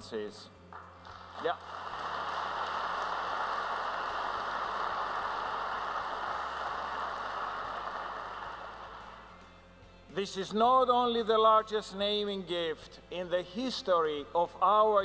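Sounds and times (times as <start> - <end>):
audience applause: 1.2 - 9.3.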